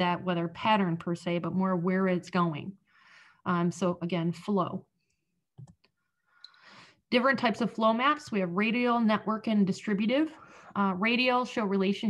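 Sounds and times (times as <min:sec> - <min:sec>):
soft in-breath: 0:02.8 - 0:03.4, 0:06.3 - 0:07.0.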